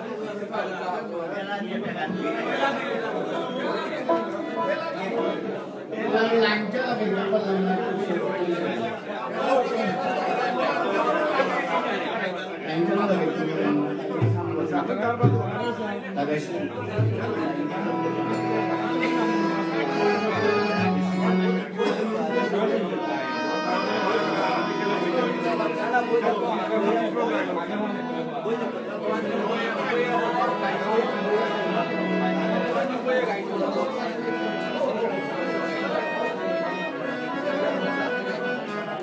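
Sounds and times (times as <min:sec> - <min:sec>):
indistinct chatter of voices: 0:00.0 - 0:39.0
many people talking: 0:00.0 - 0:39.0.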